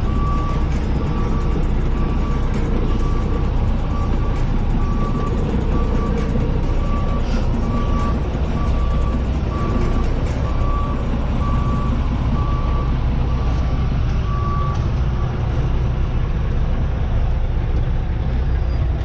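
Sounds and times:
reversing alarm beeping: 0.0 - 15.4
diesel truck engine running: 0.0 - 19.0.

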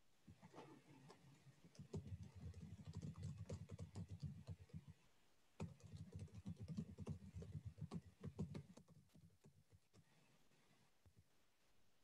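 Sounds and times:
keyboard typing: 1.6 - 4.9, 5.6 - 10.1.

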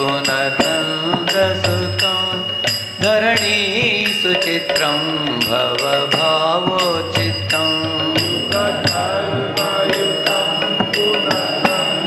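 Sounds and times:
hand cymbal strikes: 0.0 - 12.0.

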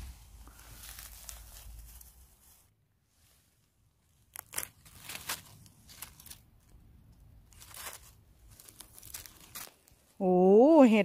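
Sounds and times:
dry leaves crackling and rustling: 0.0 - 2.7, 4.0 - 6.8, 7.4 - 10.2.

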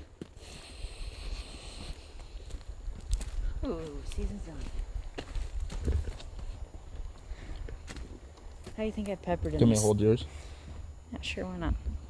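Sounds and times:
faint hiss: 0.3 - 2.6.

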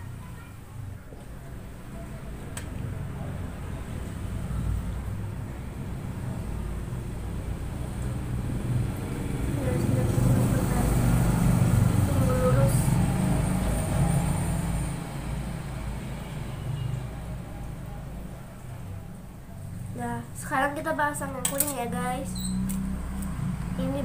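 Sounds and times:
motor vehicle rumble passing by: 0.0 - 24.0.

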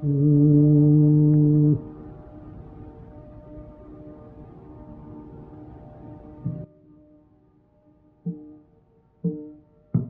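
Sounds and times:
quiet steady drone: 0.0 - 10.0.

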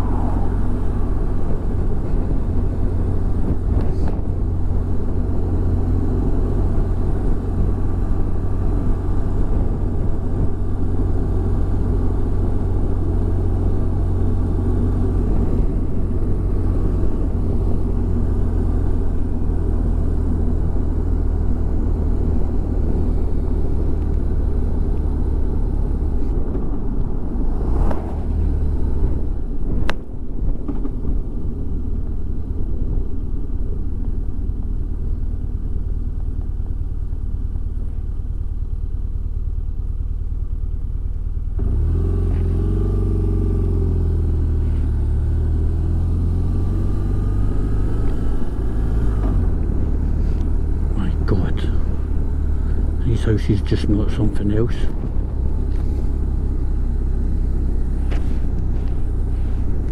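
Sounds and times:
wind noise on microphone: 0.0 - 11.9, 26.2 - 33.1
motorcycle engine rumbling: 0.0 - 59.9.

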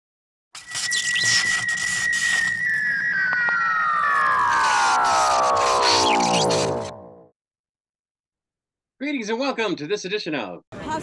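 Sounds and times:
hissing crackling noise: 0.6 - 7.2
high whistling tone gliding down: 0.6 - 7.4.

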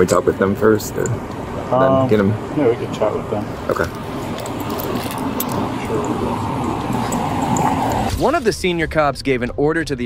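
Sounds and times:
rushing microphone noise: 3.4 - 10.0
jingling clicks of gear: 4.3 - 6.2.

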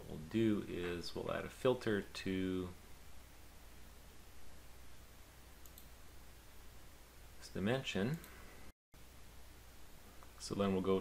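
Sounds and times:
faint computer mouse clicks: 5.6 - 5.9.

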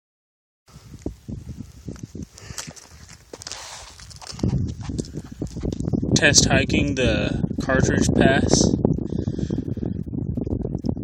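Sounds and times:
low rumble on microphone: 0.7 - 11.0
boots shifting on loose rocks: 1.9 - 5.9.

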